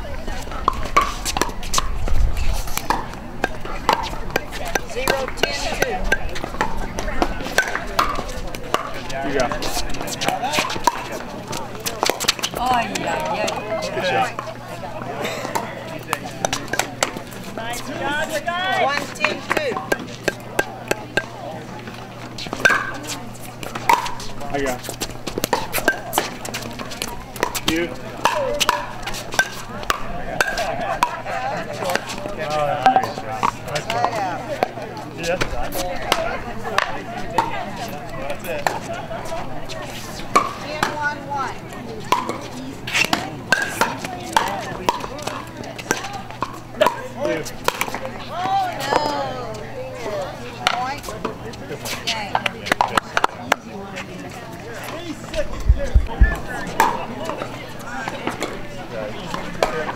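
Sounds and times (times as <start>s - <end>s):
voices talking: 0.0s - 59.9s
paddles hitting plastic ball: 2.7s - 12.6s, 23.6s - 31.2s.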